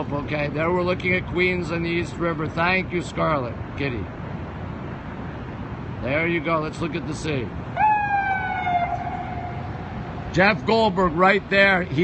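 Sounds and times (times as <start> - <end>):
siren wailing: 7.8 - 10.3.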